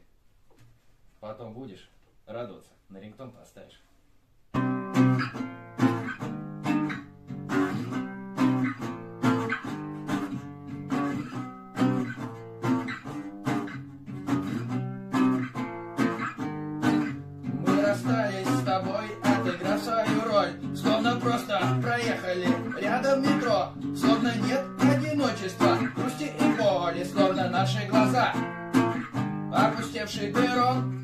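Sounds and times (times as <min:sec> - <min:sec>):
acoustic guitar strumming chords: 0:04.5 - 0:31.0.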